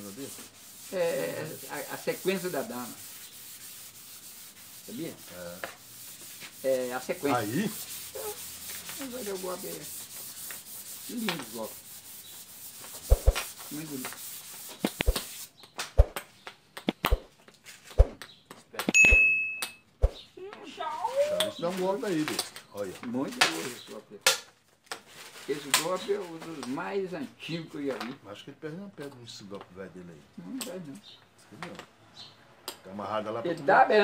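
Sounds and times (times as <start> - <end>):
notification bell ding: 19.0 - 19.8.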